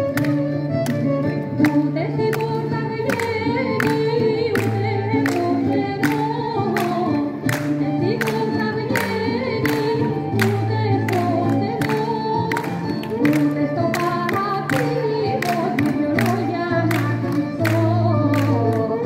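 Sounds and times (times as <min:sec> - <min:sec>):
folk instrumental music: 0:00.0 - 0:19.0
person singing: 0:01.6 - 0:19.0.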